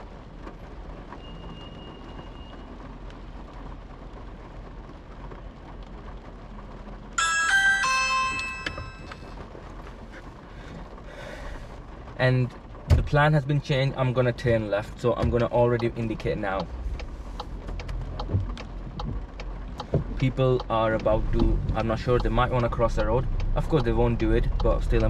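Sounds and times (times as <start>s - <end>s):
electronic chime: 7.2s - 9.3s
car cabin hum: 7.2s - 10.8s, 12.7s - 25.0s.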